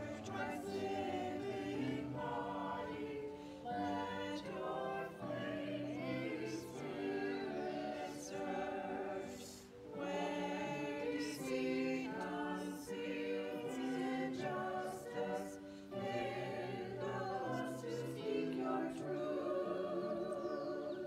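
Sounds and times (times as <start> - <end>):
small group singing a hymn: 0.0 - 21.0.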